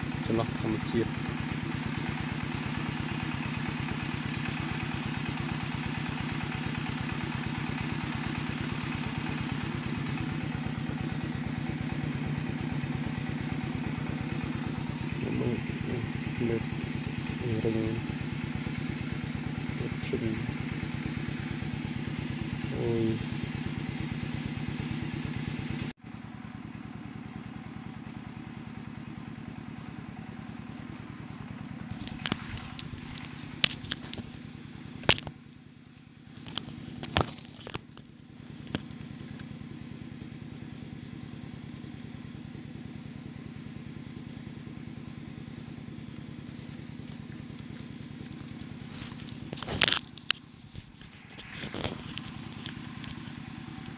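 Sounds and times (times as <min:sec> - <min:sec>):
small engine idling: 0:00.0 - 0:53.9.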